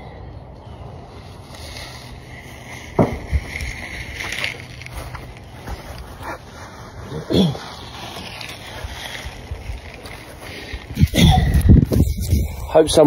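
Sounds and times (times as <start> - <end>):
steady background noise: 0.0 - 13.0
man coughing: 7.1 - 7.8.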